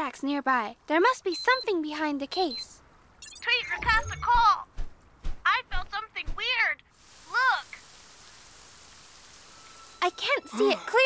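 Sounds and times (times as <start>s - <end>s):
rain falling: 6.9s - 11.0s.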